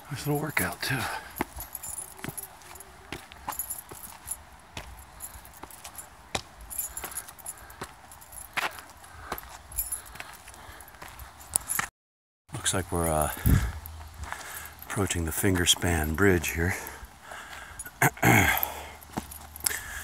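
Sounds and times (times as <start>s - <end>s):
footsteps on stone steps: 0.2s - 11.9s, 13.0s - 15.0s, 15.6s - 20.0s.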